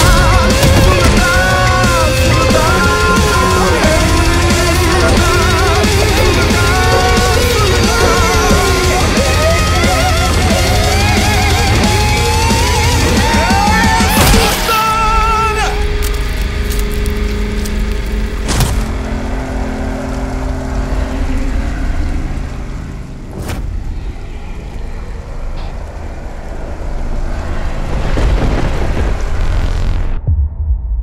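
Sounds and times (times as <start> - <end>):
low sustained music tones: 0.0 - 14.3, 14.9 - 28.0
rain: 0.0 - 30.2
sharp thunder cracks: 27.0 - 30.7.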